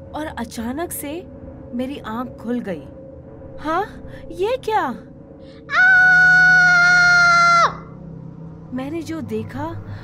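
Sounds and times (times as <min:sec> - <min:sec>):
long high-pitched scream: 0:05.7 - 0:08.0.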